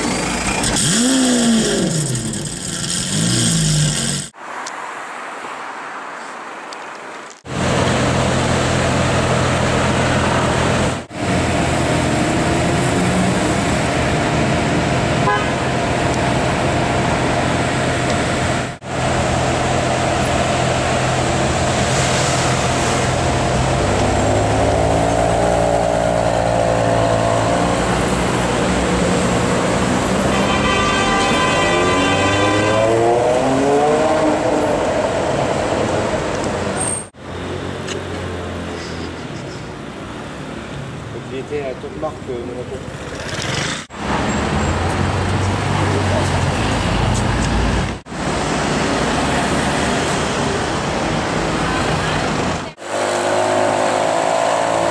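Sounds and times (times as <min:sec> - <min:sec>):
car horn: 0:15.2 - 0:15.8, 0:30.2 - 0:33.2.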